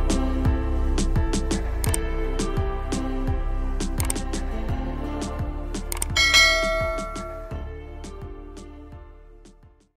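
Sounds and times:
background music with steady beat: 0.0 - 9.9
bright bell-like chime: 6.2 - 7.7.

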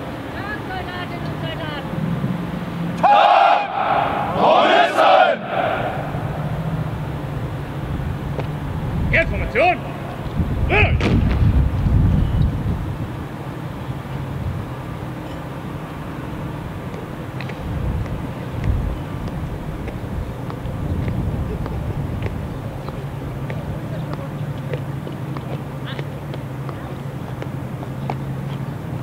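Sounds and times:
shouted drill commands: 3.0 - 6.3, 10.7 - 11.0.

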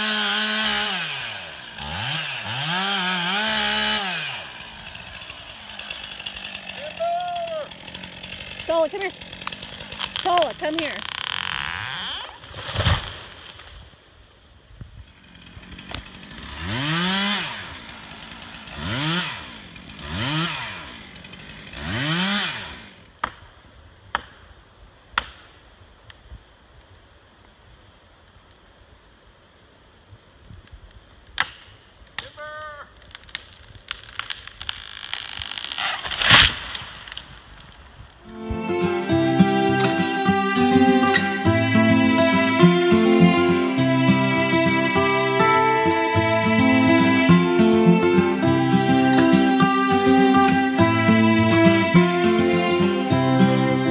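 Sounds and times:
chainsaw revving: 0.0 - 13.3, 15.0 - 23.1, 38.2 - 53.9
tree falling with heavy thud: 12.4 - 13.8, 33.2 - 38.0
loud sudden crack: 33.0 - 37.6.

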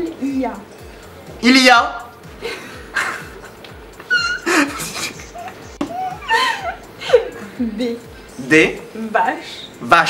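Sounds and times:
woman laughing: 2.4 - 8.0.

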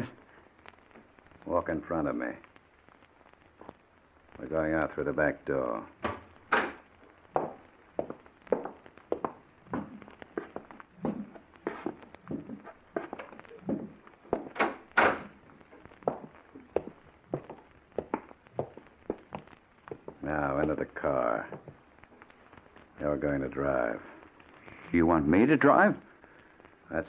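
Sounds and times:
footsteps walking: 3.5 - 3.8, 6.0 - 23.1
knocks: 6.0 - 6.8.

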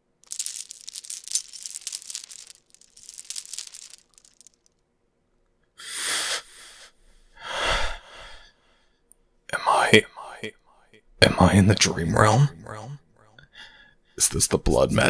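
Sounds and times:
jingling metallic rattle: 0.2 - 4.7.

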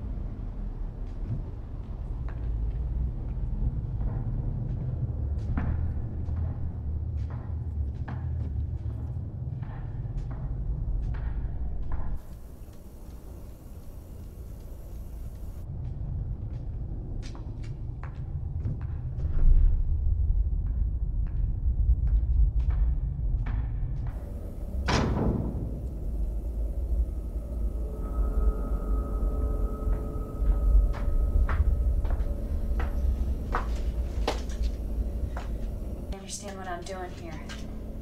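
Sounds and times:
low rumbling drone: 0.0 - 38.0.

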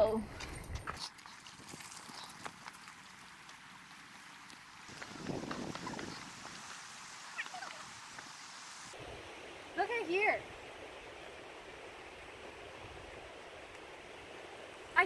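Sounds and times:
footsteps on dry leaves: 1.0 - 8.4.

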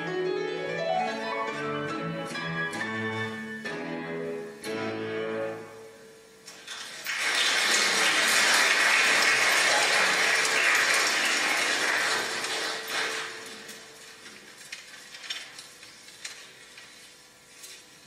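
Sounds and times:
audience applauding: 6.6 - 13.8.

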